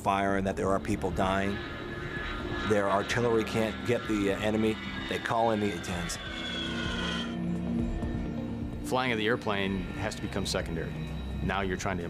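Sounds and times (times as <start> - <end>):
background music with low tones: 0.0 - 12.0
jet engine whine: 0.0 - 12.0.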